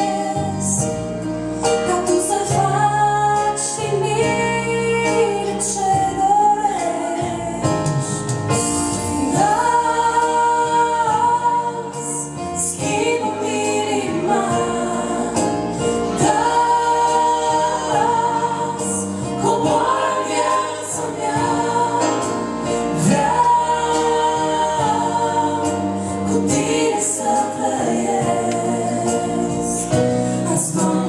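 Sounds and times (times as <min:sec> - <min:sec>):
woman and man singing duet: 0:09.0 - 0:31.0.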